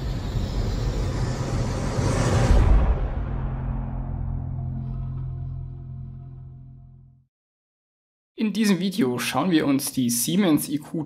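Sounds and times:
dark rumbling swell: 0.0s - 7.2s.

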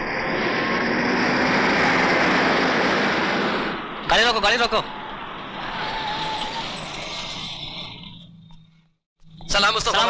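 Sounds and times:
vehicles driving along road: 0.0s - 10.0s.

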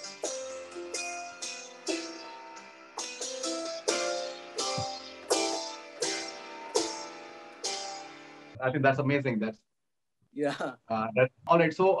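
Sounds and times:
keyboard plucked-string riff: 0.0s - 8.6s.

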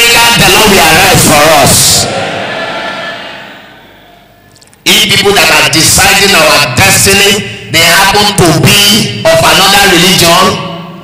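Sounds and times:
man preaching over loudspeakers: 0.0s - 2.1s, 4.8s - 11.0s.

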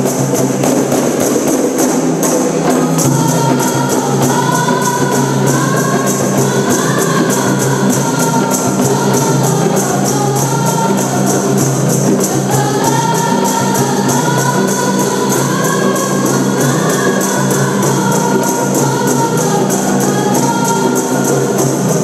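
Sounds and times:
frame drums beating: 0.0s - 22.0s
girls singing together: 0.0s - 22.0s.

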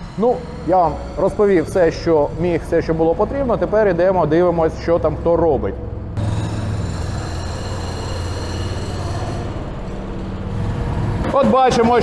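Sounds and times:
high machinery whine: 0.0s - 12.0s
low machinery hum: 0.0s - 12.0s.

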